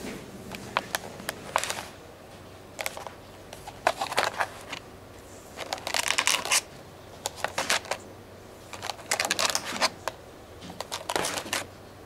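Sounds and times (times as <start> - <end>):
plastic punnet crackling: 0.5 - 2.0, 2.8 - 4.8, 5.6 - 8.0, 8.7 - 11.7.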